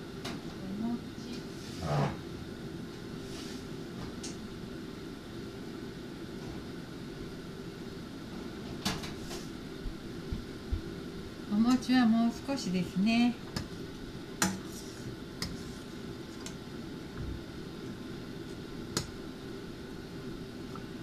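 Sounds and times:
appliance fan humming: 0:00.0 - 0:21.0.

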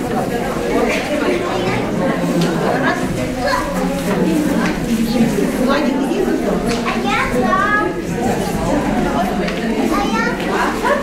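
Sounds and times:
voices chattering: 0:00.0 - 0:11.0
children calling out: 0:00.7 - 0:05.6, 0:06.6 - 0:11.0.

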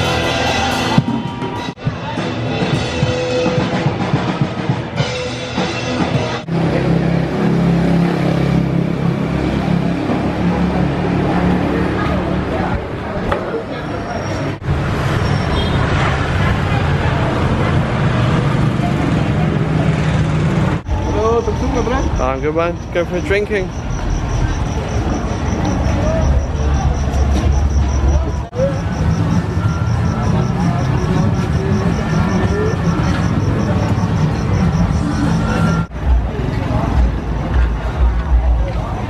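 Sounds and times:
motor traffic: 0:05.3 - 0:39.0
people talking: 0:20.8 - 0:39.0.

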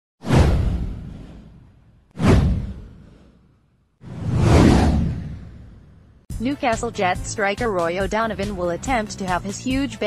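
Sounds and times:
cinematic whoosh: 0:00.2 - 0:06.3
deep rumble: 0:04.0 - 0:06.3.

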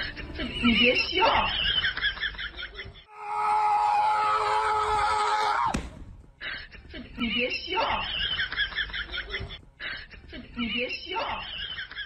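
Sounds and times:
person giggling: 0:08.2 - 0:10.6.

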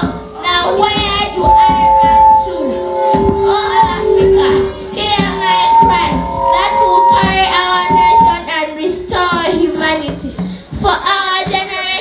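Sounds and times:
children singing: 0:00.0 - 0:12.0
music with steady beat: 0:00.0 - 0:12.0
woman singing on microphone: 0:00.0 - 0:12.0.

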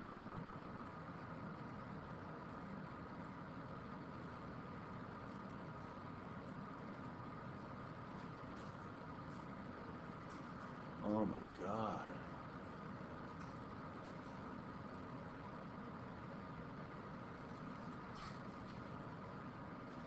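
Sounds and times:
low hum and hiss: 0:00.0 - 0:20.0.

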